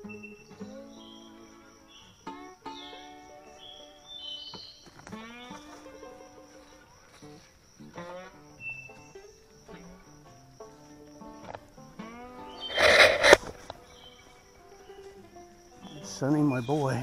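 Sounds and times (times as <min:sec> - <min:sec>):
slow background music: 0:00.0 - 0:17.0.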